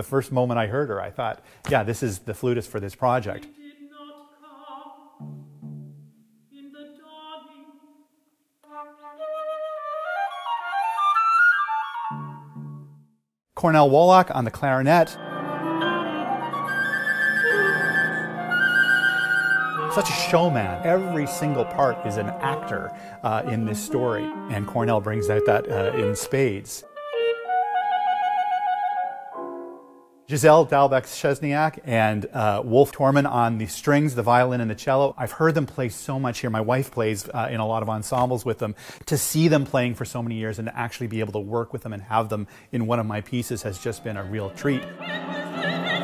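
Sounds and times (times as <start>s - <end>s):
flute playing chamber music: 8.6s - 13.2s, 14.8s - 30.2s, 43.8s - 46.0s
lower accompanying notes: 14.6s - 30.2s
clarinet rising phrase: 14.9s - 29.5s.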